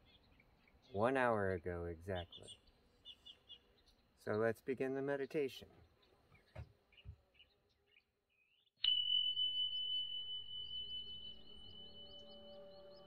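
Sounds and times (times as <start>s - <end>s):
meditation bell ringing: 8.8s - 13.0s.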